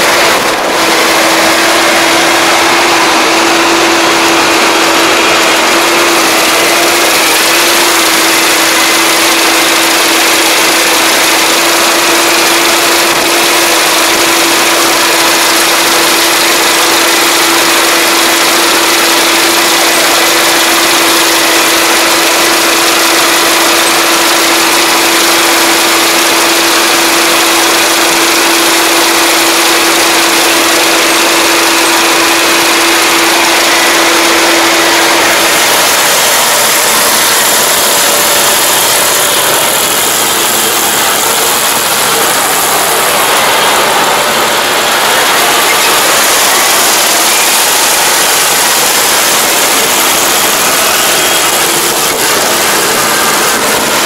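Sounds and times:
combine harvester running: 0.0s - 54.0s
steady hum: 30.7s - 54.0s.

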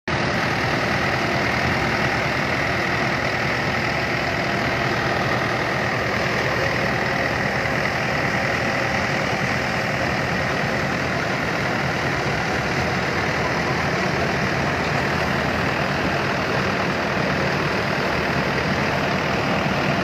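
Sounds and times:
tractor diesel engine running: 0.1s - 20.0s.

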